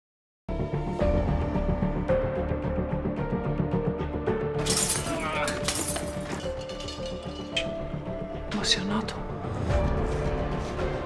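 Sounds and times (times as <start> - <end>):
film score music: 0.5 - 11.0
glass shattering: 4.6 - 7.8.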